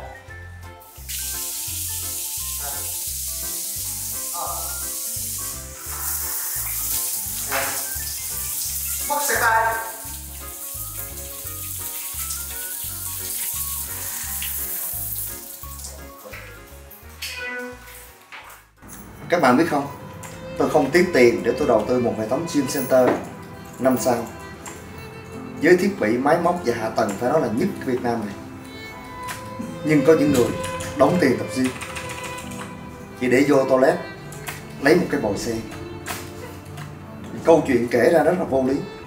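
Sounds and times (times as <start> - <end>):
shower running: 0.8 - 36.7.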